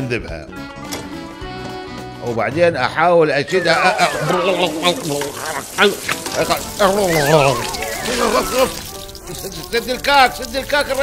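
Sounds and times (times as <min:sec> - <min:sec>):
man crying out: 0:03.4 - 0:05.1
water spraying from tap: 0:03.8 - 0:11.0.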